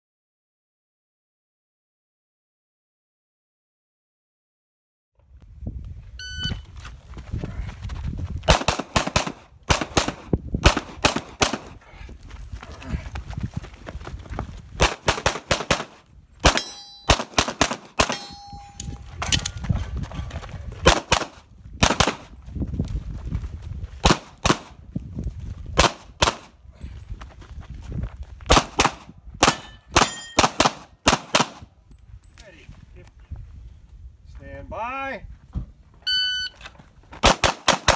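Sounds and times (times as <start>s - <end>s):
shot timer beeps: 6.2s - 6.7s, 36.0s - 36.6s
handgun shots: 28.5s - 31.6s.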